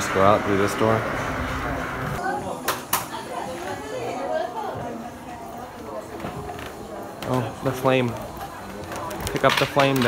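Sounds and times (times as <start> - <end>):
faint voices talking: 0.3 - 10.0.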